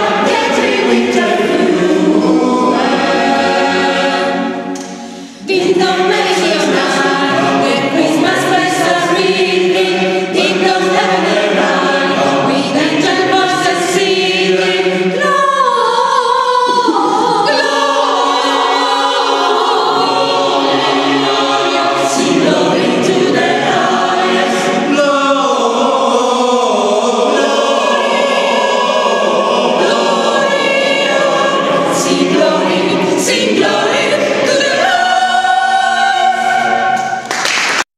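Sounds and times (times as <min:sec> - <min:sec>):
mixed choir singing a carol: 0:00.0 - 0:37.8.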